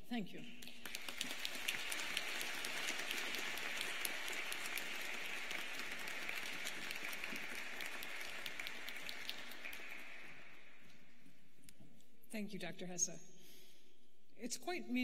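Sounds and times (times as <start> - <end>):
audience applauding: 0.6 - 10.7.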